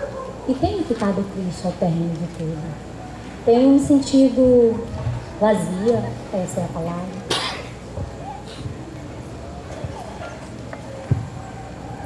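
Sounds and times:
faint indistinct voices: 0.0s - 12.0s
short cough: 7.3s - 7.7s.

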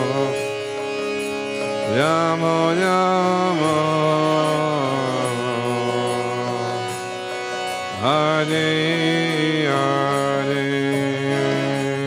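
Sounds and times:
harmonium drone: 0.0s - 12.0s
man singing a chant: 1.9s - 6.9s, 8.0s - 12.0s.

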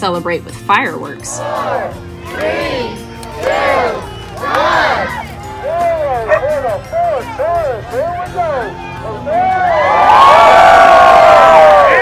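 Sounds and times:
crowd shouting a countdown: 1.3s - 12.0s
excited crowd shouts and calls: 1.3s - 12.0s.

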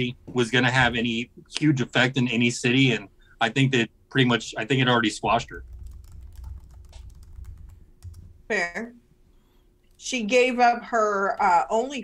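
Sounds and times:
low steady hum: 0.0s - 12.0s
keyboard key clicks: 5.8s - 8.2s.

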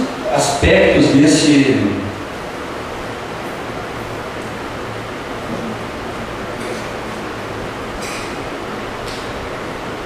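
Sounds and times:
steady background hiss: 0.0s - 10.0s.

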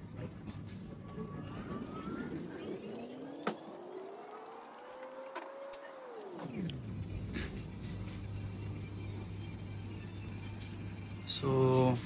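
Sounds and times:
low rumble: 0.8s - 3.8s
rising whine: 0.9s - 11.8s.

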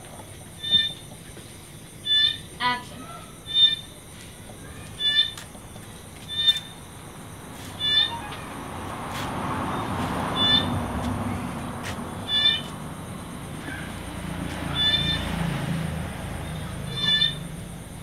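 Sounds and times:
animal's short high call: 16.9s - 17.4s.

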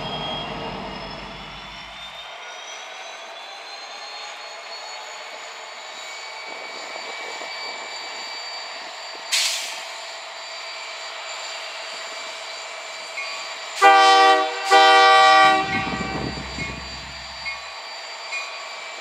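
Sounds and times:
diesel locomotive idling: 0.0s - 2.3s, 7.9s - 18.9s
air hiss: 9.3s - 10.0s
train air horn blasts: 13.8s - 16.5s.

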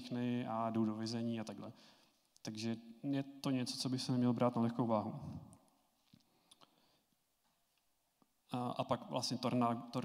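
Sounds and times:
man speaking: 0.0s - 1.8s, 2.4s - 5.5s, 8.5s - 10.0s.

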